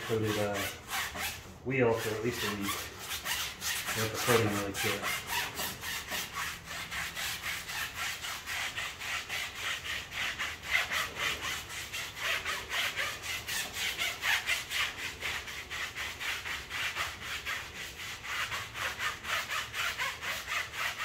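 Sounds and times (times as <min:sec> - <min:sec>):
brush scrubbing wet tire: 0:00.0 - 0:21.0.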